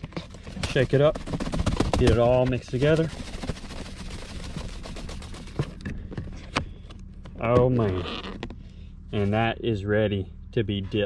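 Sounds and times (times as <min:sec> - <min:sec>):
powder rattling in plastic container: 0:00.0 - 0:05.9.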